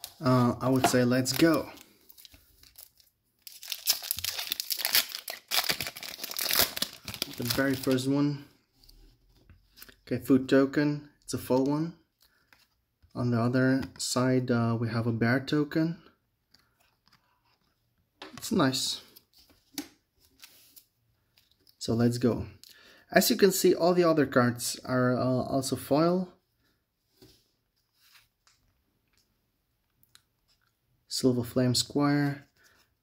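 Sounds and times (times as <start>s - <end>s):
foil wrapper crinkling and tearing: 1.2s - 8.0s.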